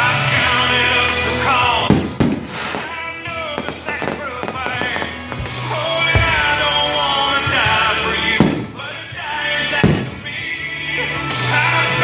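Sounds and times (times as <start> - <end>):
music with singing: 0.0 - 12.0
fireworks bursting: 1.5 - 10.6.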